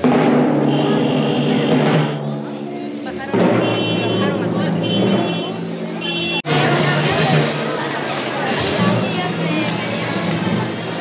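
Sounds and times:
brass band playing held chords: 0.0 - 2.6, 3.4 - 7.3
crowd voices: 0.0 - 11.0.

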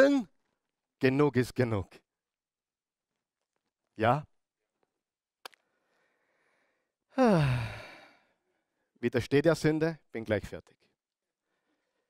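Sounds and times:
man sighing: 7.1 - 8.3.

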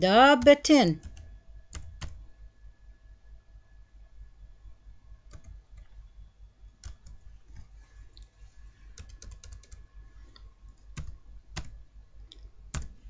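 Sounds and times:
faint low hum: 0.0 - 13.0
keyboard keystrokes: 5.3 - 5.9, 6.8 - 7.7, 9.0 - 9.8, 12.7 - 13.0.

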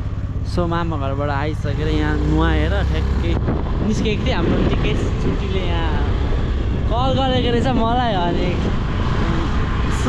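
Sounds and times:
motorcycle engine: 0.0 - 10.0
wind on microphone: 3.2 - 10.0.

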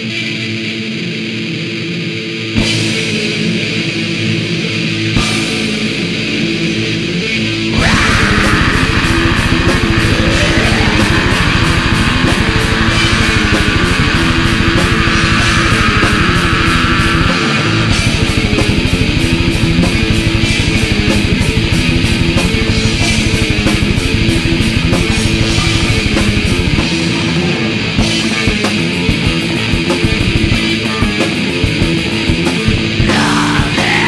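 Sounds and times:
bass guitar: 0.0 - 34.0
distorted electric guitars: 0.0 - 34.0
fast drum beat: 7.8 - 27.2, 28.0 - 34.0.

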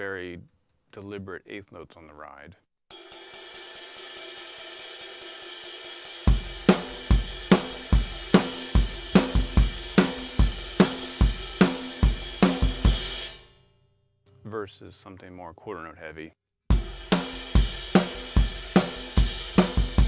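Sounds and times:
kick and snare drums: 6.2 - 13.3, 16.7 - 20.0.

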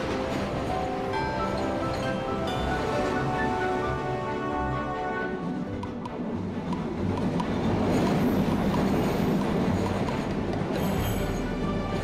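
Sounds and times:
background music: 0.0 - 12.0
cartoon train rushing through tunnel: 0.0 - 12.0.

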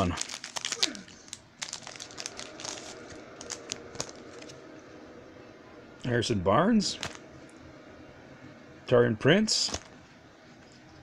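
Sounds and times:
wrapper tearing and crinkling: 0.0 - 4.5.

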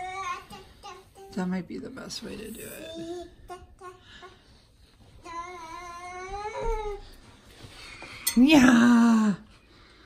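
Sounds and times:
toddler singing: 0.0 - 1.4, 2.8 - 4.4, 5.2 - 7.1.

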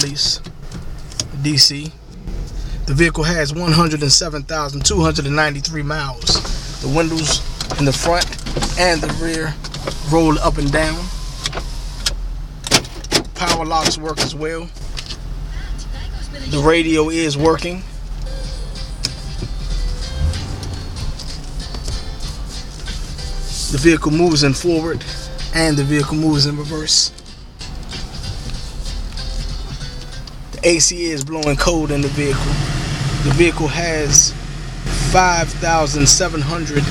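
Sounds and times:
car engine idling: 0.0 - 36.9
power window motor: 20.1 - 21.9.

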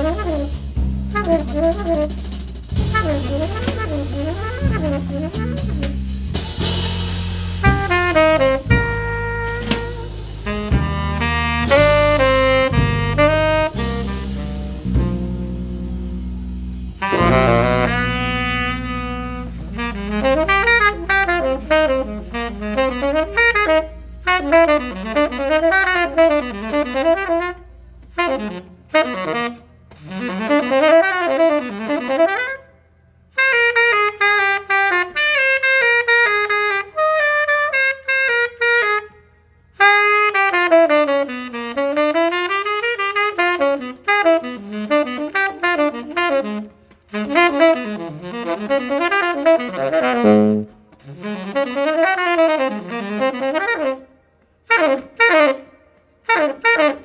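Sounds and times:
tenor saxophone jazz solo: 0.0 - 57.0.

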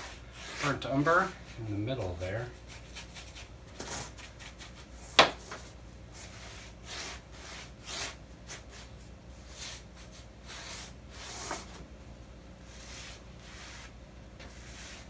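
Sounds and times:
paintbrush scratchy strokes: 12.7 - 13.9, 14.5 - 15.0.

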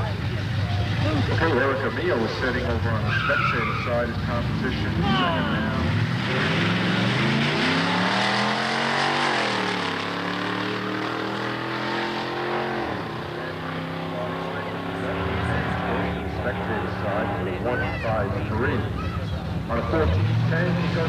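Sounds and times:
drag cars accelerating hard: 0.0 - 21.0.

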